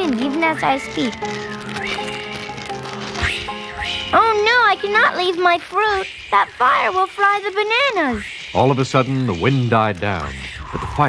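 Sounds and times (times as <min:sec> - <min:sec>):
cellophane crinkling: 0:00.0 - 0:05.8
background music: 0:00.0 - 0:11.0.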